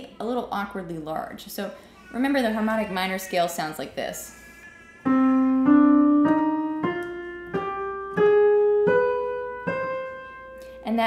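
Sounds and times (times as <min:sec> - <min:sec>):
piano playing a scale: 0:05.0 - 0:11.0.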